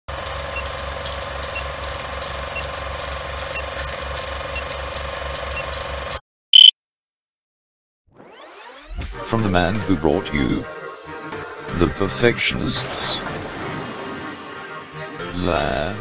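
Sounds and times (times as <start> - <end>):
film projector clattering: 0.1 - 6.2.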